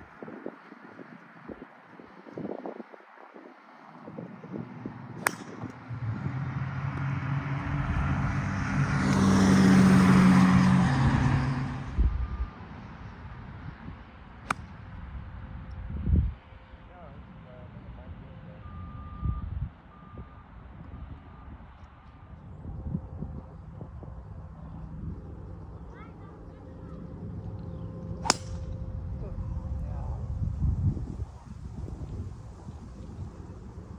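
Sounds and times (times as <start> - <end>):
vehicle passing by: 4.1 - 14.8
golf ball struck with crack: 5.2 - 5.9, 14.4 - 14.8, 28.2 - 28.8
faint beeps: 18.0 - 21.9.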